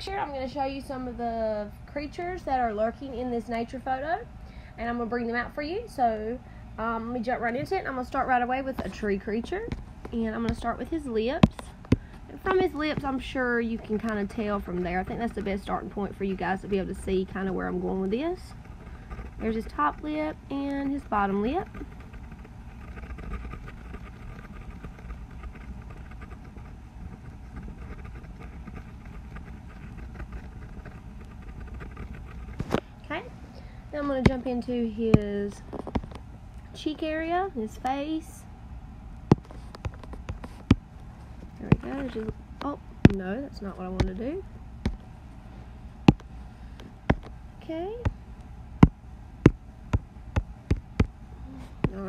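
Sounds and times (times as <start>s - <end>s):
low background rumble: 0.0s - 52.0s.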